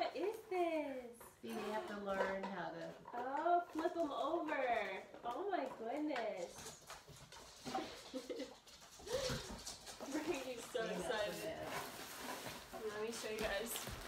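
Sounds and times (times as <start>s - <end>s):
cardboard box and paper rustling: 9.1s - 14.0s.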